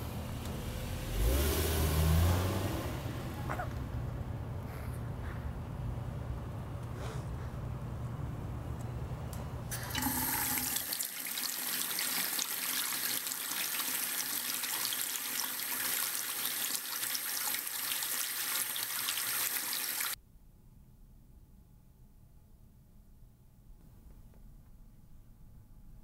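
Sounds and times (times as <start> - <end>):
faucet water pouring into sink: 9.7 - 20.2.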